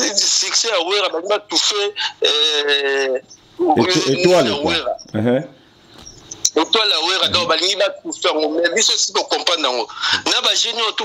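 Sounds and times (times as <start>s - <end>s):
person talking: 1.0s - 5.5s, 6.4s - 10.7s.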